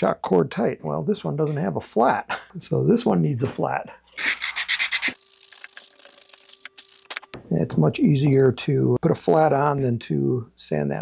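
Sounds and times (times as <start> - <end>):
sanding stick rubbing plywood: 4.2 - 5.2
sharp clicks: 5.4 - 7.4.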